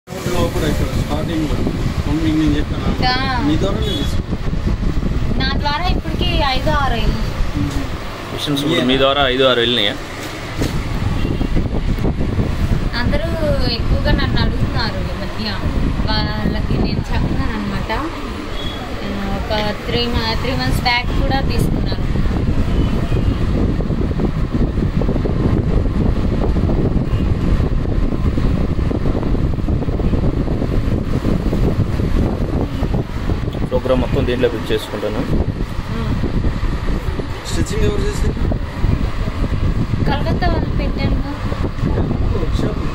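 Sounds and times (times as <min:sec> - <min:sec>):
embroidery machine rumbling: 0:00.2 - 0:42.9.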